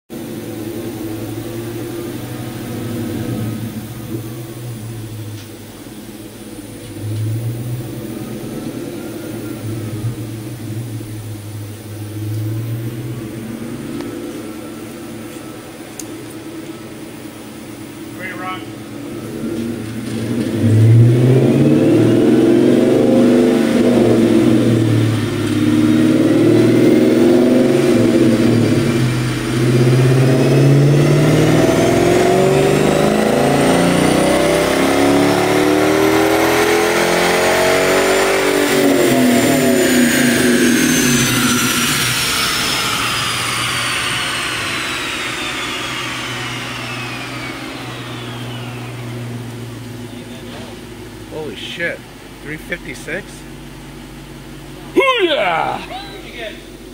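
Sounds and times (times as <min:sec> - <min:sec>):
car engine at full throttle: 0:00.1 - 0:56.9
high whine: 0:00.1 - 0:56.9.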